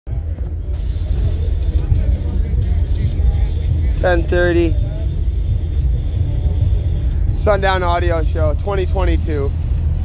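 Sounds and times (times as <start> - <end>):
deep bass music from subwoofers: 0.1 - 10.0.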